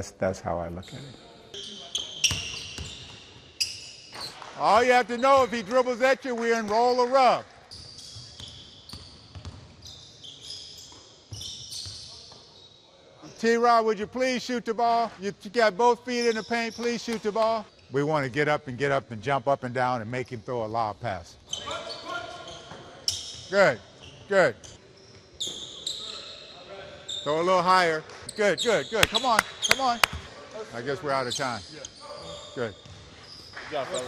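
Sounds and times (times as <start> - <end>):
sneakers squeaking: 0.8 - 13.4, 16.1 - 17.9, 21.4 - 34.0
basketball bouncing: 8.2 - 9.7, 32.8 - 33.1.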